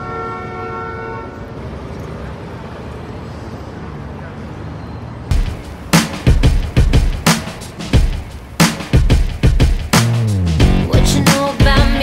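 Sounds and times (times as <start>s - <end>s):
vehicle horn: 0.0s - 1.5s
city street traffic: 0.0s - 12.0s.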